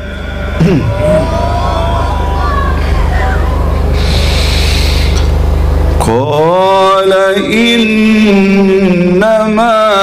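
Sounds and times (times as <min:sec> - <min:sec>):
steady low hum: 0:00.0 - 0:10.0
audience calling out: 0:00.2 - 0:04.0.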